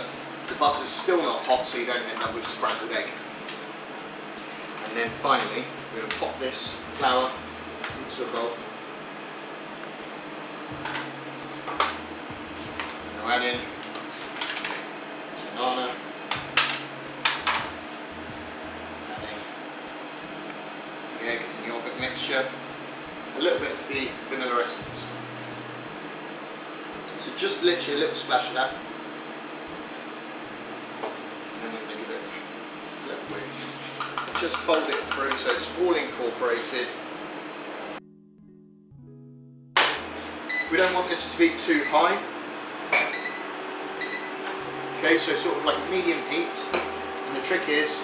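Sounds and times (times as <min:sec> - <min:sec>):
soft background music: 0:00.0 - 0:37.0, 0:37.8 - 0:48.0
fan hum: 0:00.0 - 0:38.0, 0:39.8 - 0:48.0
utensils knocking on steel bowl: 0:34.0 - 0:35.6.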